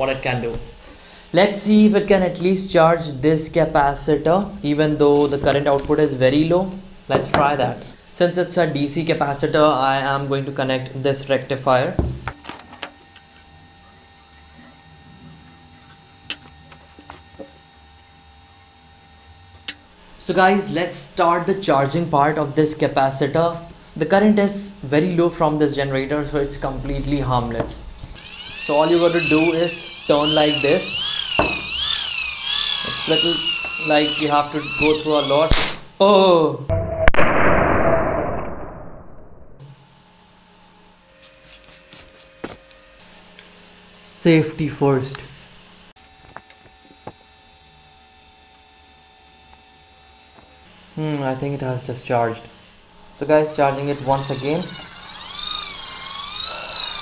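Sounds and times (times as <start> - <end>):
capacitor spark crack: 34.8 - 35.9.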